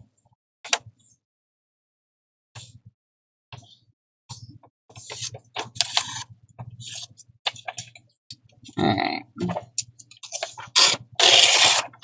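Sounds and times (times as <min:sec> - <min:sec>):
paper sheet rustling: 0:10.2 - 0:12.0.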